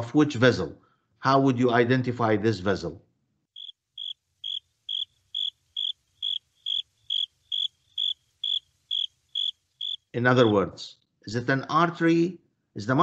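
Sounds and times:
cricket chirping: 0:03.6 - 0:10.6.

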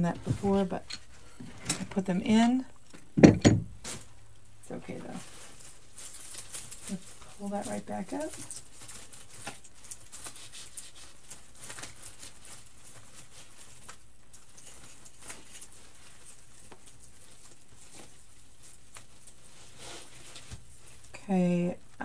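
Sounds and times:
artificial stems rustling and crackling: 0:00.0 - 0:22.0.

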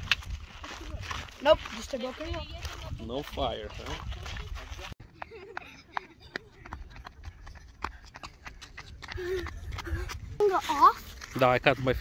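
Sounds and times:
children running on sandy trail: 0:00.0 - 0:12.0.

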